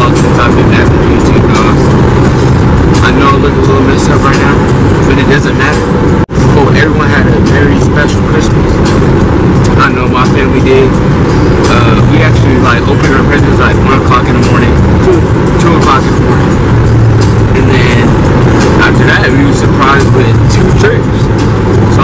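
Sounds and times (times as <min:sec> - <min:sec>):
man talking: 0:00.0 - 0:02.0, 0:02.9 - 0:08.8, 0:09.7 - 0:11.0, 0:11.6 - 0:16.3, 0:17.5 - 0:21.3
car cabin road and engine rumble: 0:00.0 - 0:22.0.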